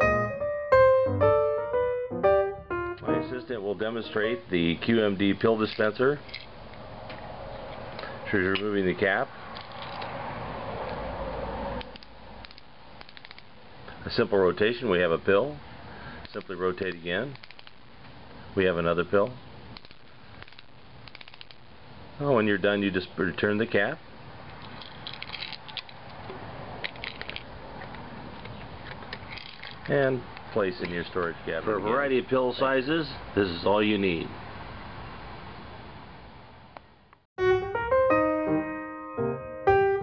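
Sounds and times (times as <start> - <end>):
plastic cap ratchet clicking: 11.8 - 13.5, 16.2 - 17.8, 19.8 - 21.6
pill bottle cap scraping: 11.9 - 13.4, 19.8 - 21.6, 24.6 - 26.0, 26.8 - 28.0, 28.8 - 29.9.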